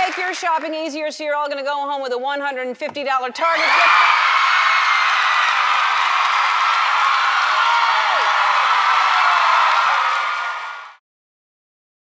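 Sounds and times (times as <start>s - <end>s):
clapping: 0.0s - 0.7s, 4.7s - 11.0s
audience screaming and cheering: 3.5s - 11.0s.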